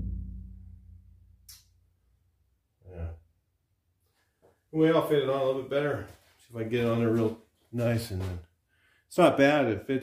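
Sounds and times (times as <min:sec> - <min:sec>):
low ring of steel panel: 0:00.0 - 0:01.6
man sighing: 0:02.8 - 0:03.2.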